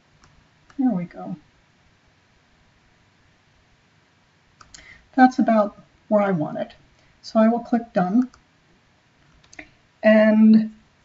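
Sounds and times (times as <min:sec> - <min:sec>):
short faint clicks: 0:04.6 - 0:04.9.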